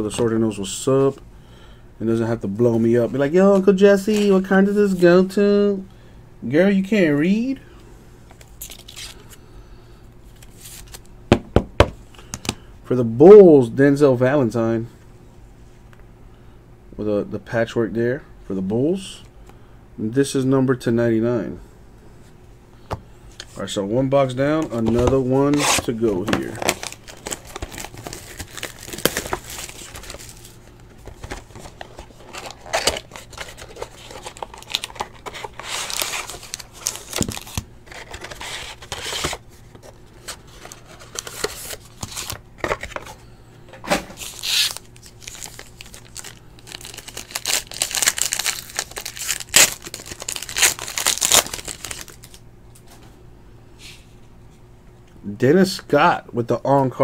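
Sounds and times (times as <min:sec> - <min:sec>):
cards rustling and tapping: 0:24.5 - 0:43.1
plastic wrapping crinkling: 0:25.6 - 0:39.4, 0:44.2 - 0:52.4.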